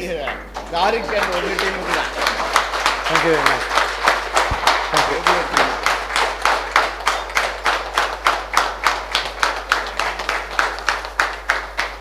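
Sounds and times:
group clapping in rhythm: 0:00.0 - 0:12.0.

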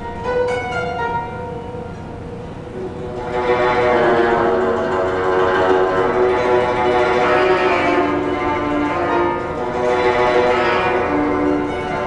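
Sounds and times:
zither plucked notes: 0:00.0 - 0:12.0.

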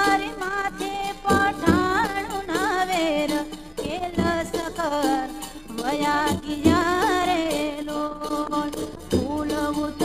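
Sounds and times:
drum strokes: 0:00.0 - 0:10.0
woman singing folk song: 0:00.0 - 0:10.0.

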